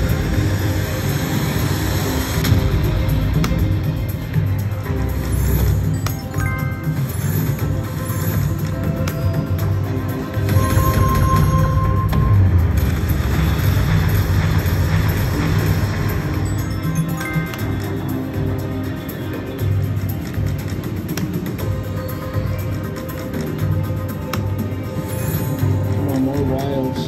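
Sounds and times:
slot machine spin music: 0.0s - 27.0s
low casino din: 0.1s - 27.0s.

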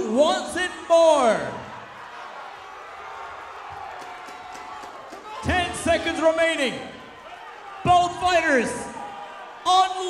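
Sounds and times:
man commentating: 0.0s - 1.8s, 5.3s - 7.1s, 7.8s - 10.0s.

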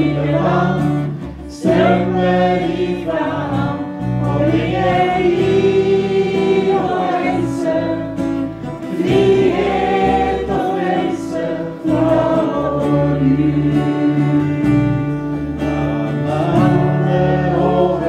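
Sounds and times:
electric bass guitar: 0.0s - 18.0s
electric guitar: 0.0s - 18.0s
voices singing together: 0.0s - 18.0s.

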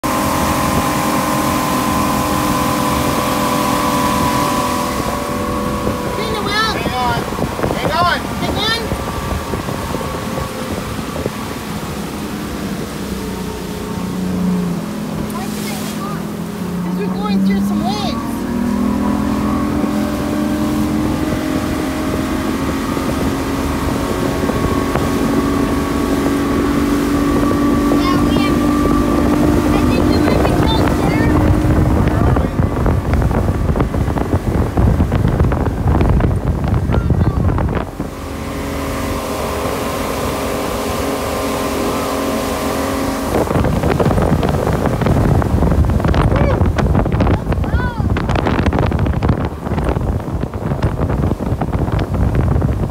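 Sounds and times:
boat wake hissing: 0.0s - 52.9s
outboard motor running: 0.0s - 52.9s
wind on microphone: 0.0s - 52.9s.

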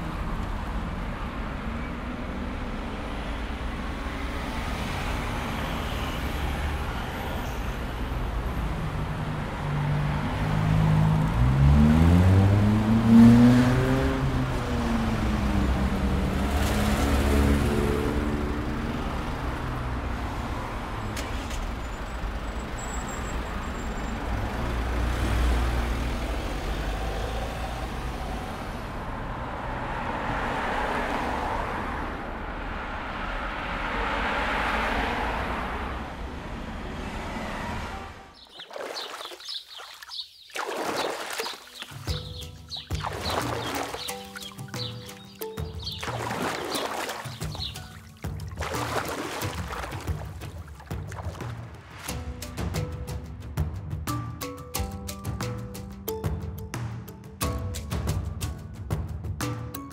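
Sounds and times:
road traffic rumble: 0.0s - 59.4s
vehicle engine passing by: 8.2s - 22.4s, 23.5s - 38.1s
weaker engine sound: 8.8s - 20.6s.

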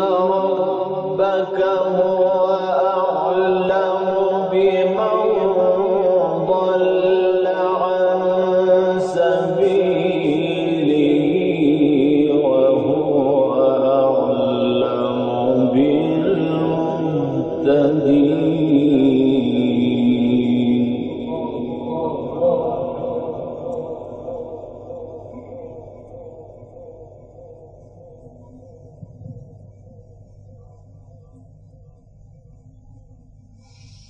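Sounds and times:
man chanting melodically: 0.0s - 30.0s.

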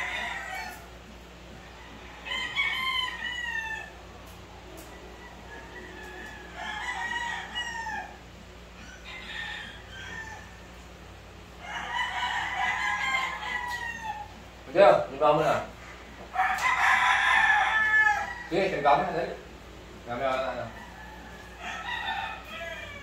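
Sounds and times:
roosters crowing: 0.0s - 23.0s.

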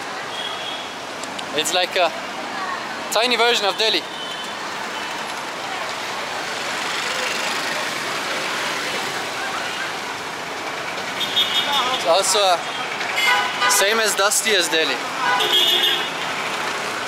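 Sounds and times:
city street traffic: 0.0s - 17.0s.

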